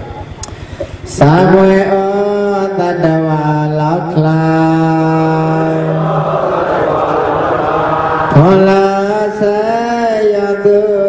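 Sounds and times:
man chanting: 0:01.1 - 0:11.0.

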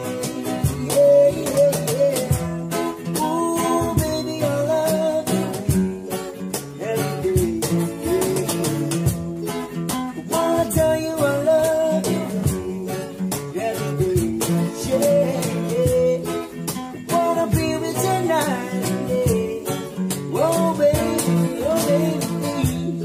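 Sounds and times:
person singing: 0:00.0 - 0:09.5, 0:10.1 - 0:23.0
plucked and strummed guitar: 0:00.0 - 0:23.0.

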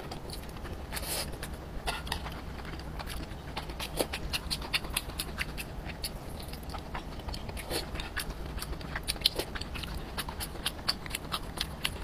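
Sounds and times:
wet chewing mouth sounds: 0:00.0 - 0:12.0.

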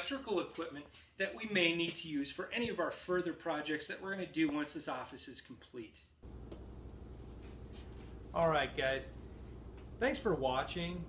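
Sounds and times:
steady low hum: 0:06.2 - 0:11.0.

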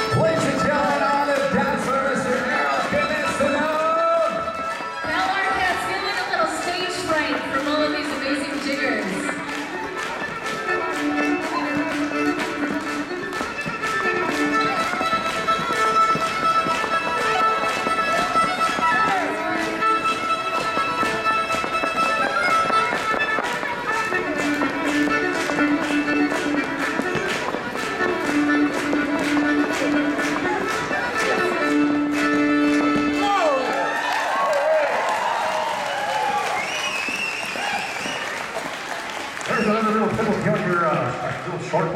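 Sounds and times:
feet tapping on wooden floor: 0:00.0 - 0:34.0
fiddle playing dance tune: 0:00.0 - 0:41.9.

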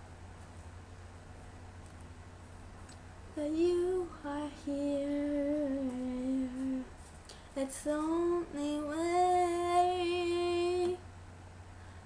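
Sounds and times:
girl singing: 0:03.3 - 0:07.0, 0:07.6 - 0:11.0.

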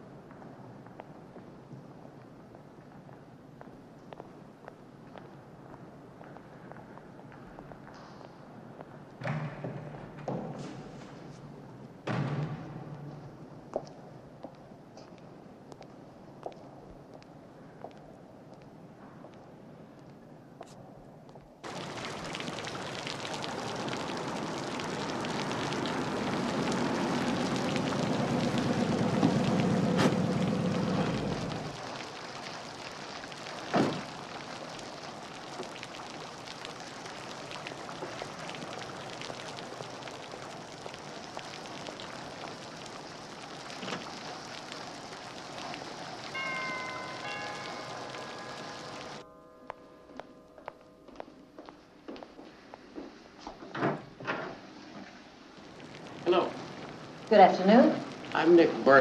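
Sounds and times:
fountain water splashing: 0:21.6 - 0:49.2, 0:55.4 - 0:59.0
car engine rumbling: 0:21.7 - 0:31.8
chime notes ringing: 0:46.3 - 0:51.9.

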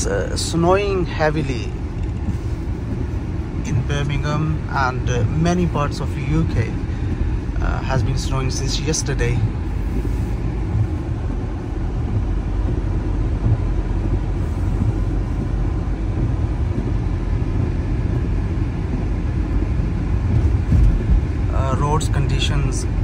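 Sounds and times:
car driving heard from inside: 0:00.0 - 0:23.0.

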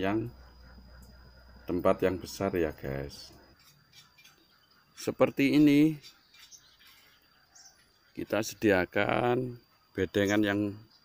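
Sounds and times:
faint high bird chirp: 0:02.4 - 0:08.8, 0:09.5 - 0:11.0.

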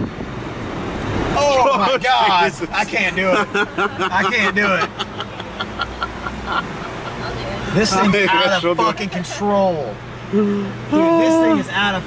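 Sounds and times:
road and tyre noise: 0:00.0 - 0:12.0.

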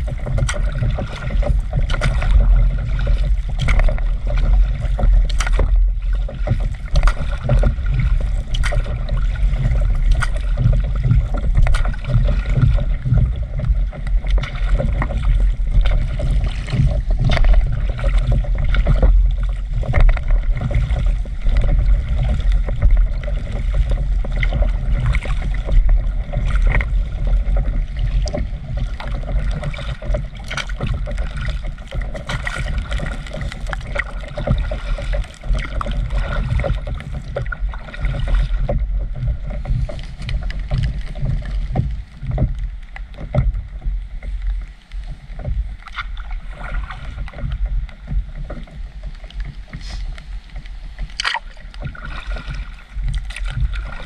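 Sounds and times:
continuous low rumble: 0:00.0 - 0:54.0
water lapping against paddleboard: 0:00.0 - 0:54.0.

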